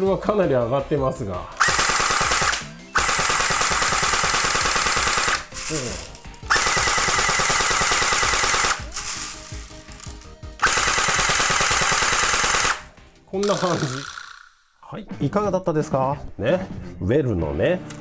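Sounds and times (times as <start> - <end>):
electric airsoft gun full-auto bursts: 1.6 - 14.6.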